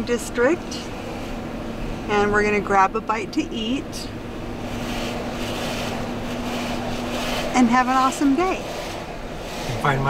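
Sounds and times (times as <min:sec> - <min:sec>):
car road and engine noise: 0:00.0 - 0:10.0
steady low hum: 0:00.0 - 0:10.0.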